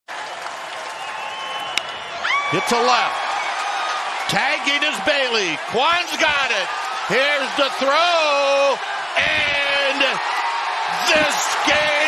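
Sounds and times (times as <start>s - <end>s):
stadium crowd noise: 0.1s - 12.0s.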